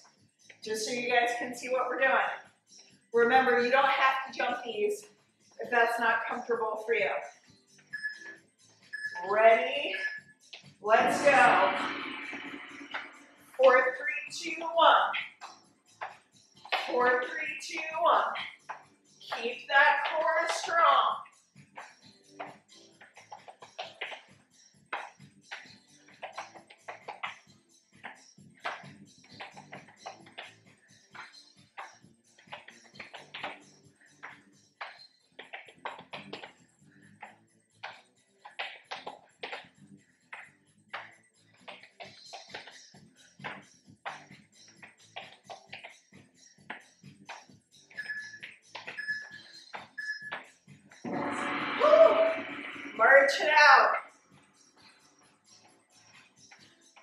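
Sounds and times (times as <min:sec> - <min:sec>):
background music with beat: 0:04.5 - 0:14.4, 0:15.0 - 0:57.0
short beeps: 0:11.0 - 0:13.5
taps and thuds on exercise mat: 0:37.2 - 0:39.7, 0:43.4 - 0:46.0.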